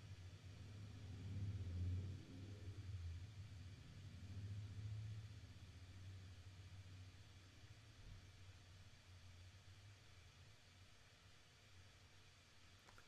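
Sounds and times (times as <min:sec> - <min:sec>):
faint low hum: 0:00.0 - 0:13.0.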